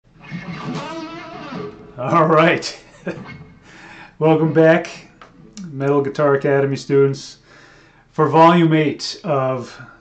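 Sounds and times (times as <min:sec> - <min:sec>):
electric guitar phrase: 0:00.5 - 0:06.2.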